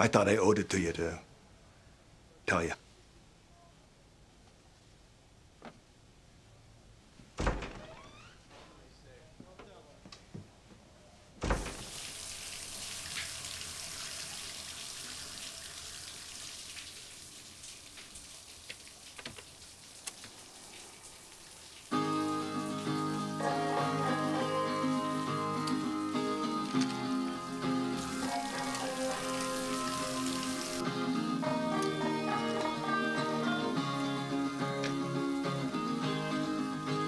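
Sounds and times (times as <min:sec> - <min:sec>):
shower spraying water: 0:11.7 - 0:30.8
song with guitar from stereo: 0:21.9 - 0:37.0.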